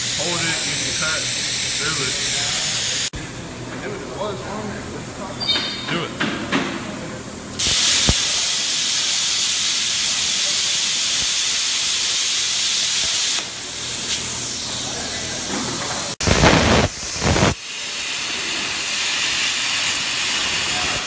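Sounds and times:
plasma cutter torch hissing: 0.0s - 3.1s, 7.6s - 21.0s
soft rush of air from torch: 16.2s - 21.0s.

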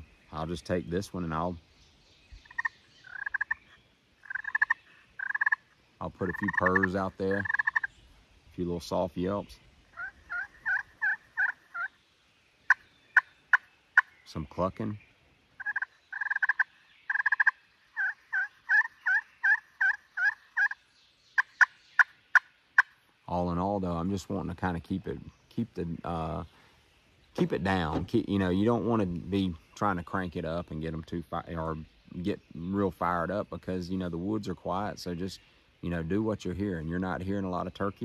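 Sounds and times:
turkey call trills: 2.4s - 8.0s, 9.9s - 12.0s, 12.7s - 14.2s, 15.6s - 20.8s, 21.4s - 23.0s.

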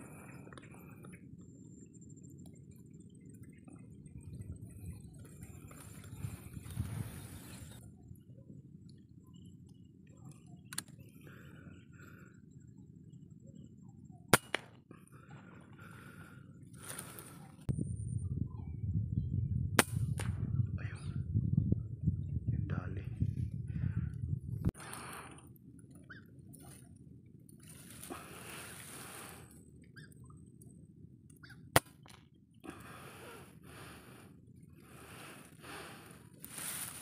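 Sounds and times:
rifle shot: 14.3s - 14.7s.

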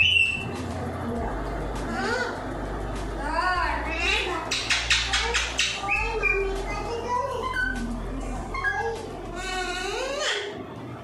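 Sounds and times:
parakeet calling: 0.0s - 0.6s, 3.9s - 10.6s.

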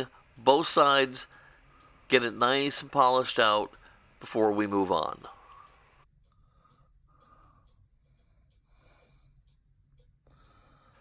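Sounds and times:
cotton swab rubbing plastic: 6.0s - 8.7s.

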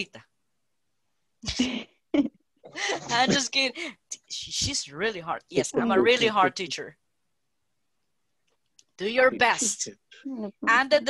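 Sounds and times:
woman laughing breathily: 2.7s - 3.3s.

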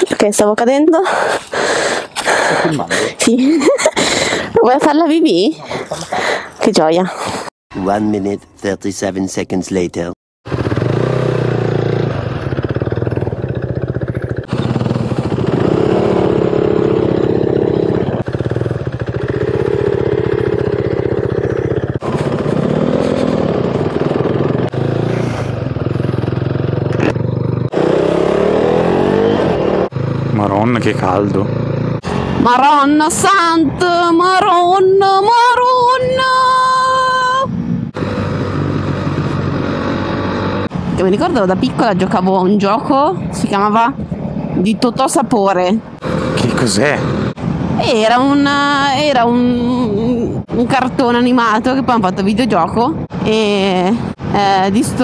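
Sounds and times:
motorcycle engine accelerating: 10.4s - 45.1s, 45.8s - 55.0s
wind rushing over microphone: 32.0s - 55.0s
wind noise on microphone: 33.6s - 39.7s, 46.0s - 51.2s.

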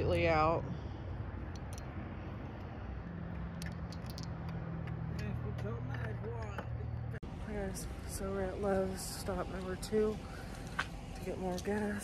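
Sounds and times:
low mechanical hum: 7.0s - 12.0s.

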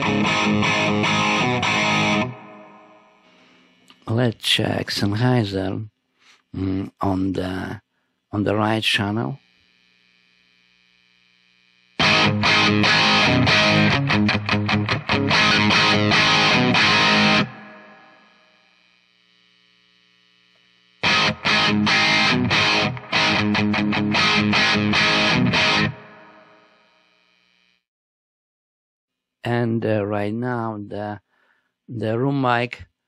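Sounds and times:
distorted electric guitar riffs: 0.0s - 4.2s, 11.8s - 19.0s, 20.6s - 27.3s
faint amp hum: 0.0s - 27.8s.

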